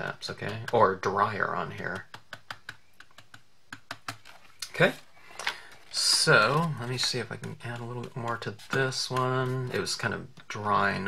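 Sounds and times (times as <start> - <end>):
stylus tapping on cardstock: 0.4 - 4.3, 5.5 - 10.6.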